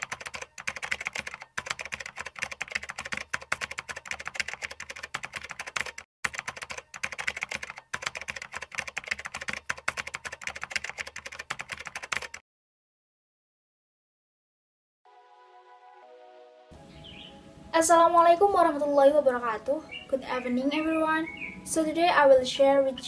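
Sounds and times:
fast keyboard typing: 0.0s - 12.4s.

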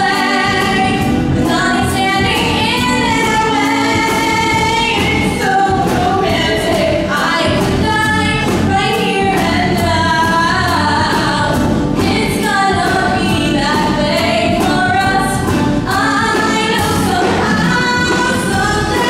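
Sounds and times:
live rock band: 0.0s - 19.0s
woman singing a ballad: 0.0s - 19.0s.

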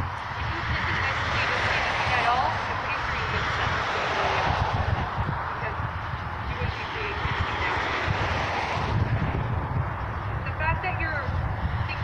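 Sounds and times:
faint voices: 0.0s - 8.7s
wind buffeting microphone: 0.0s - 12.0s.

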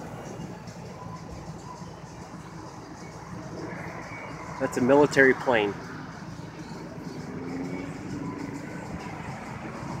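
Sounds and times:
distant jet aircraft rumble: 0.0s - 10.0s.

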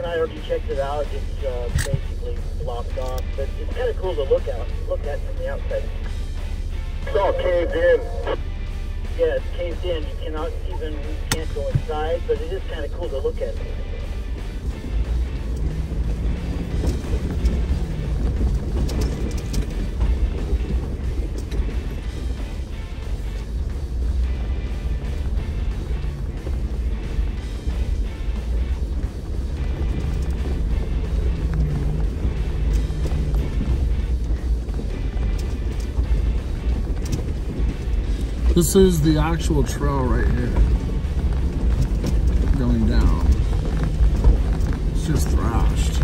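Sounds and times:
music playing: 0.0s - 46.0s
off-road vehicle rumble: 0.0s - 46.0s.

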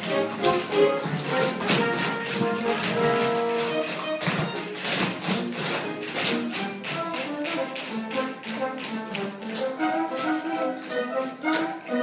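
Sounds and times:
orchestra playing up-tempo show tune: 0.0s - 12.0s
tap shoes clicking on stage: 0.0s - 12.0s.

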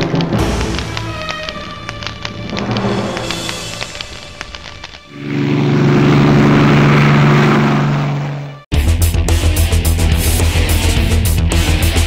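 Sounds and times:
music with plucked notes and percussion: 0.0s - 4.0s
engine-like drone: 0.0s - 8.7s.

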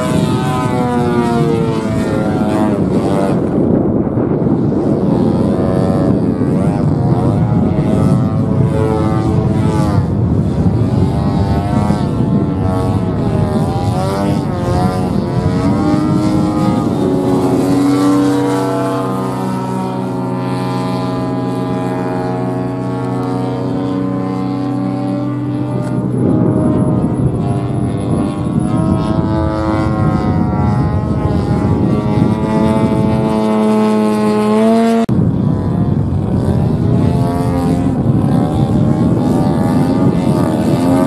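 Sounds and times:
model airplane engine droning: 0.0s - 41.0s.

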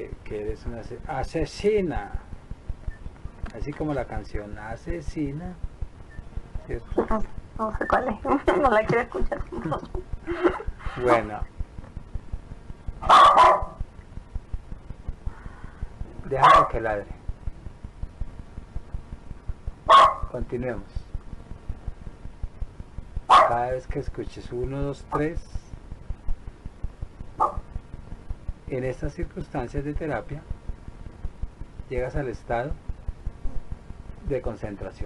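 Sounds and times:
low thumps: 1.9s - 34.4s
dog barking: 13.0s - 13.8s, 16.4s - 16.8s, 19.9s - 20.4s, 23.3s - 23.6s, 27.4s - 27.7s.

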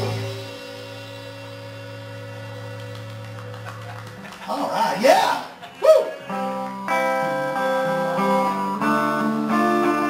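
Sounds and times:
electric guitar and bass ringing: 0.0s - 4.2s, 6.1s - 10.0s.

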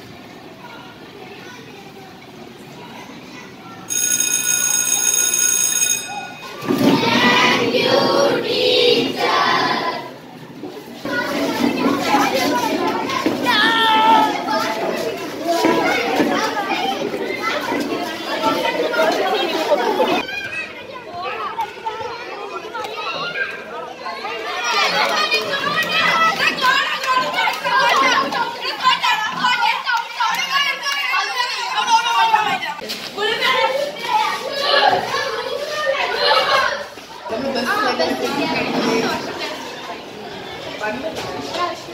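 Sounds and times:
schoolchildren talking and calling out: 0.0s - 41.9s
boys shouting and laughing: 11.1s - 40.4s.

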